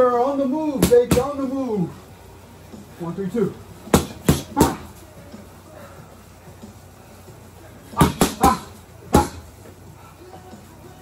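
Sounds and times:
boxing gloves punching mitts: 0:00.7 - 0:01.4, 0:03.9 - 0:05.0, 0:07.9 - 0:09.6.

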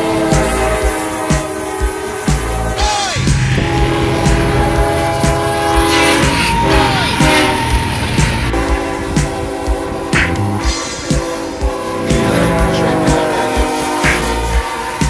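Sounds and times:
music with thumping beat: 0:00.0 - 0:15.0.

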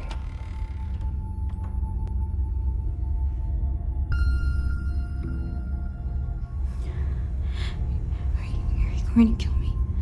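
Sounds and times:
low rumbling drone: 0:00.0 - 0:10.0
woman breathing: 0:06.6 - 0:08.4.

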